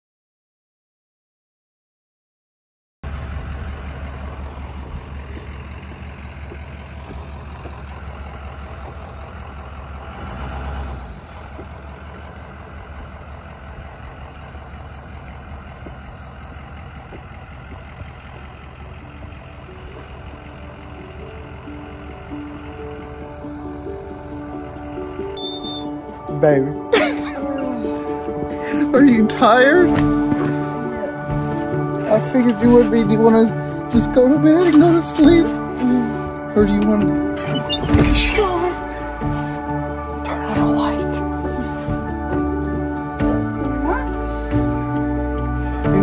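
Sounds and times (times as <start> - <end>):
bus engine rumble: 3.0 - 46.0
music with held notes: 18.8 - 46.0.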